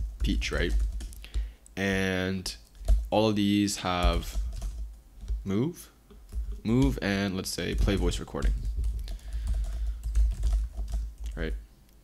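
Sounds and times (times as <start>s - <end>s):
rapid keyboard typing: 0.0s - 1.8s, 2.6s - 5.5s, 6.2s - 11.6s.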